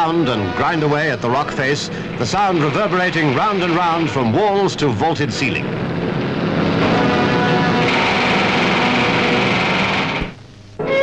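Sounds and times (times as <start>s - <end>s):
pneumatic rock drills hammering: 7.8s - 10.4s.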